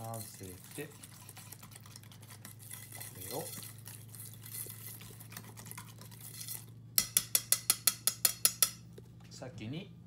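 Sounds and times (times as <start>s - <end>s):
paste stirred in metal bowl: 0.0s - 8.8s
utensil clinking against metal bowl: 0.0s - 9.0s.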